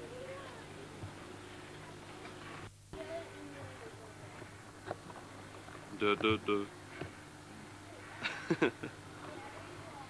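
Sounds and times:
low hum and hiss: 0:00.0 - 0:10.0.

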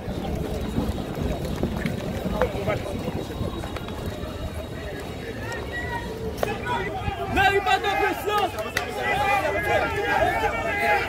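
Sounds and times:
continuous low rumble: 0:00.0 - 0:11.0
indistinct voices: 0:00.0 - 0:11.0.

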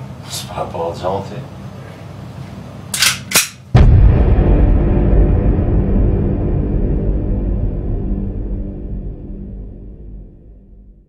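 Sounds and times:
sharp cracks: 0:03.0 - 0:03.7
dark music: 0:03.8 - 0:11.0
loud low boom: 0:03.8 - 0:11.0
low steady drone: 0:03.8 - 0:11.0.

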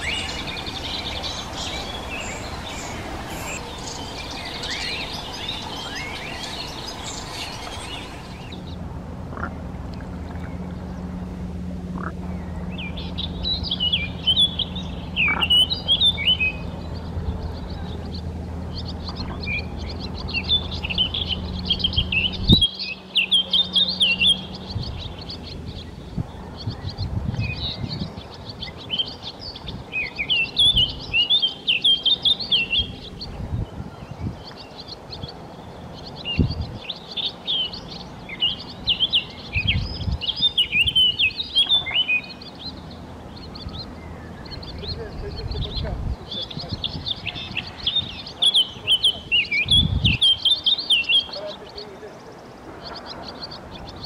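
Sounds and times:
ducklings peeping: 0:00.0 - 0:11.2, 0:11.9 - 0:54.0
low steady hum: 0:00.0 - 0:54.0.

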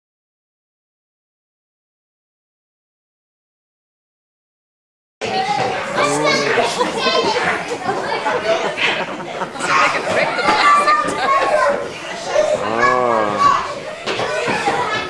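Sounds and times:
children chattering and calling out: 0:05.2 - 0:15.0.

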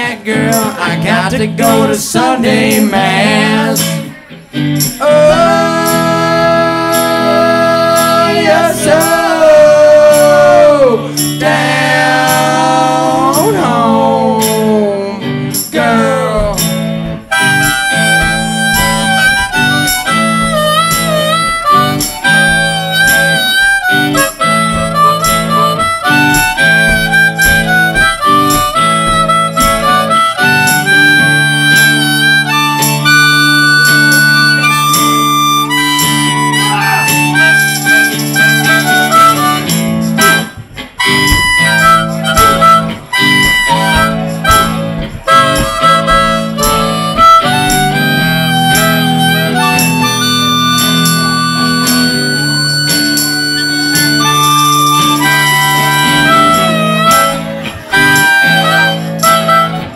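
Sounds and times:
electric guitar: 0:00.0 - 0:59.9
harmonica solo with bent notes: 0:00.0 - 0:59.9
steady drum beat: 0:15.8 - 0:31.4, 0:38.8 - 0:50.0.

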